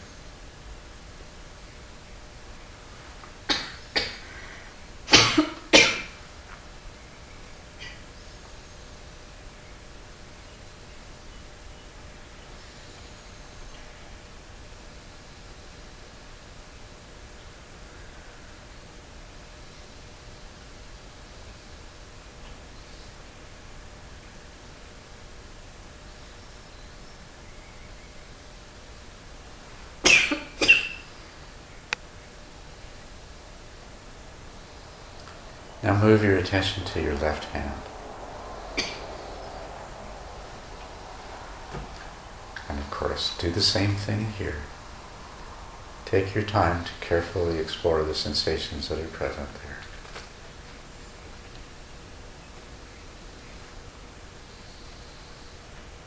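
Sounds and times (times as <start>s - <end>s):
faint room tone hiss: 0.0s - 56.0s
person coughing: 5.1s - 6.2s, 30.1s - 30.9s.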